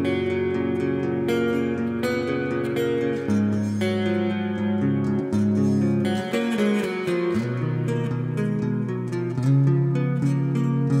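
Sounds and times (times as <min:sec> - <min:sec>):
clean electric guitar riff: 0:00.0 - 0:11.0.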